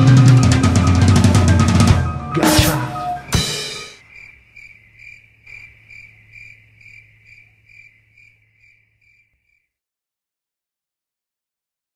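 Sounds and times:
cricket-like chirping: 2.4s - 9.8s.

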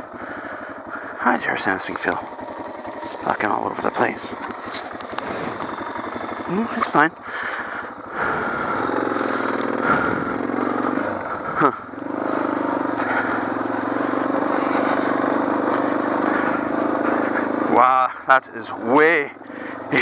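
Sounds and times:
motorcycle engine under load: 0.0s - 20.0s.

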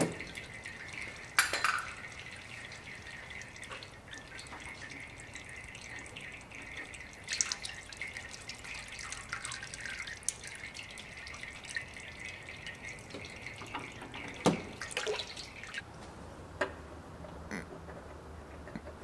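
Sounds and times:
oil splash: 0.0s - 15.8s
oil trickling and dripping: 0.0s - 16.1s.

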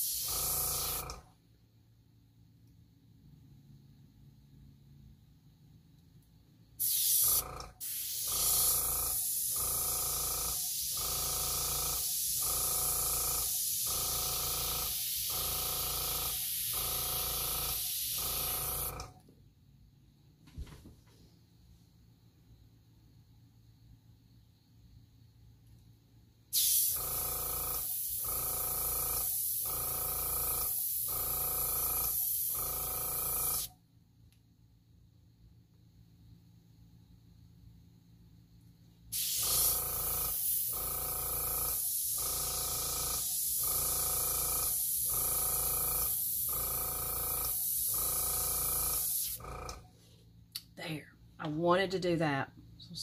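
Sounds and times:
airbrush air hissing: 0.0s - 1.2s, 6.8s - 9.6s, 10.6s - 12.5s, 14.8s - 15.6s, 16.2s - 16.9s, 17.6s - 19.0s, 26.5s - 27.0s, 39.1s - 40.8s, 41.6s - 43.7s.

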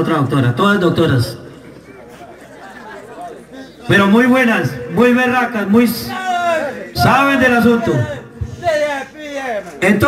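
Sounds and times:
man speaking over microphone: 0.0s - 1.6s, 3.6s - 10.0s
crowd chatter: 1.3s - 10.0s.

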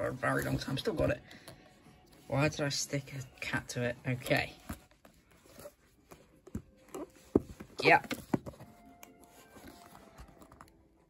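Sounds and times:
taps and rustles of book handling: 3.2s - 11.0s.

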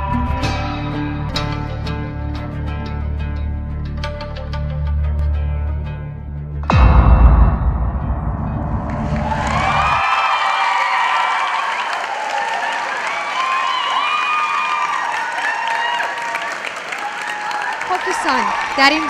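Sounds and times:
audience cheering: 9.1s - 19.0s
audience applause: 9.5s - 19.0s.

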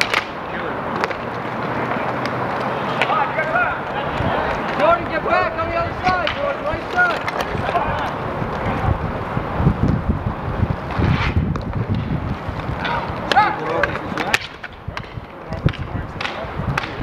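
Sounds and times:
hockey stick clack: 0.0s - 3.2s, 6.0s - 8.2s, 12.8s - 17.0s
players shouting: 0.0s - 9.4s, 12.7s - 14.6s
inline skate wheels rolling: 0.0s - 17.0s.

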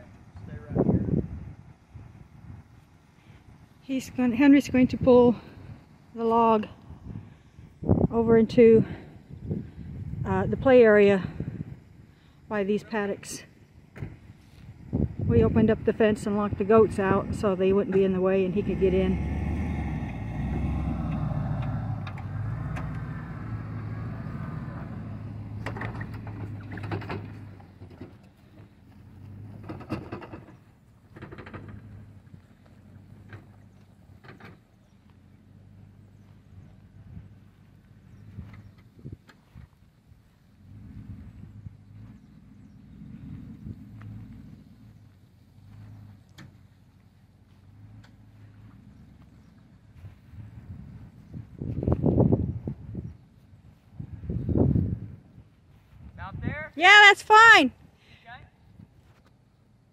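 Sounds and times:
engine running at low speed: 0.0s - 56.8s, 57.7s - 59.9s.

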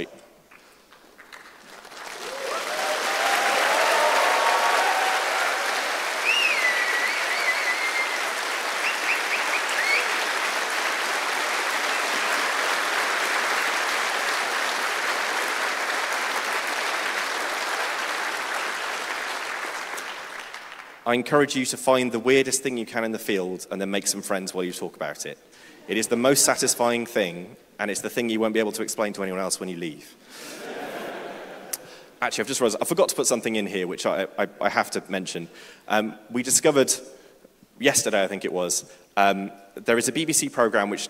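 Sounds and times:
audience applauding: 1.0s - 21.0s
cheers: 2.1s - 20.6s
whistles from audience: 4.6s - 10.4s, 11.8s - 12.3s.

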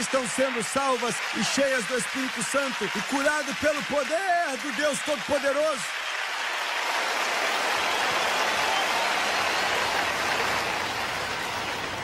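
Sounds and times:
audience applauding: 0.0s - 12.0s.

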